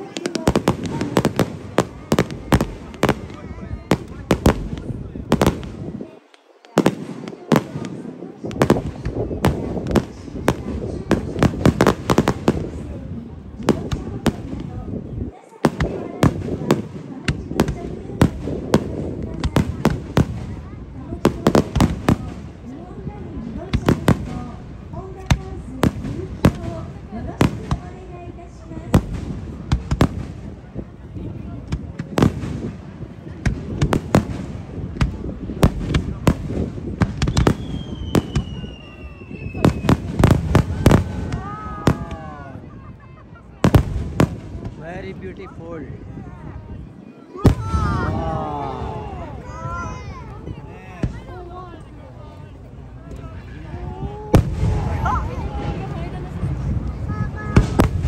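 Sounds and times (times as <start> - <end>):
firework crackling: 0.0 - 58.0
spectators' voices: 0.0 - 58.0.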